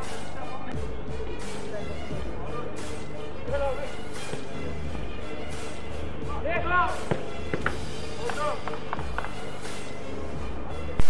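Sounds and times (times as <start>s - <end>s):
ball being kicked: 4.3s - 4.5s, 7.0s - 9.4s.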